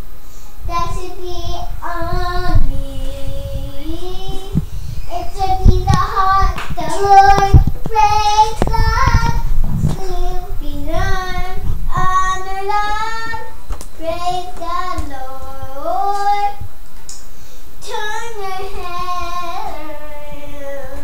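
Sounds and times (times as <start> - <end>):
girl singing: 0.6 - 16.8, 17.8 - 21.0
low thumps: 0.7 - 13.3.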